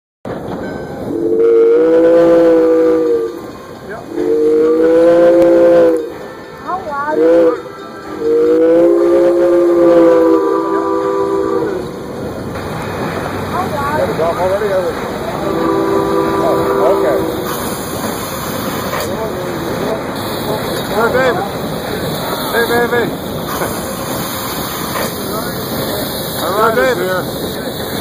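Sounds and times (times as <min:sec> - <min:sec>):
steam locomotive chime whistle: 0:00.6 - 0:12.1, 0:15.3 - 0:19.1.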